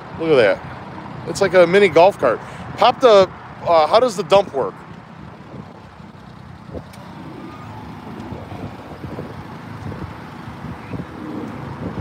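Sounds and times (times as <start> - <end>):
small truck engine running: 3.4 - 12.0.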